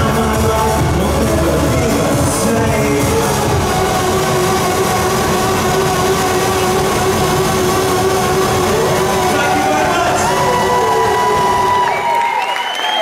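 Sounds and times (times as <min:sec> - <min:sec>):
held synthesizer chord: 0:00.0 - 0:11.9
drums and bass: 0:00.0 - 0:12.1.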